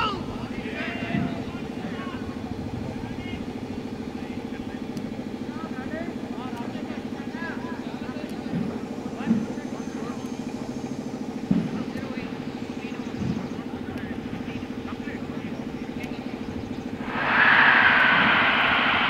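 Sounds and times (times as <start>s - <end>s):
brief sharp sounds: 17.0s - 19.0s.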